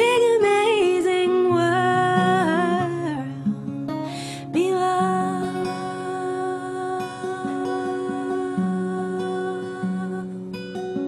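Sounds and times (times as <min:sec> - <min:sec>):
acoustic guitar: 0:00.0 - 0:11.0
woman singing: 0:00.0 - 0:11.0.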